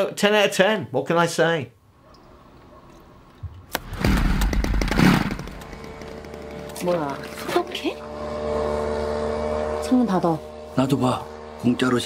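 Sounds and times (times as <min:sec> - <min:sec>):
fogging machine engine drone: 0:04.7 - 0:12.0.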